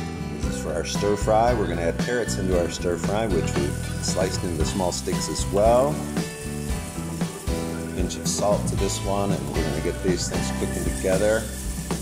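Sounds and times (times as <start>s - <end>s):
background music with held notes: 0.0s - 12.0s
vegetables sizzling in hot oil: 2.1s - 12.0s
spatula stirring in a pan: 11.0s - 12.0s.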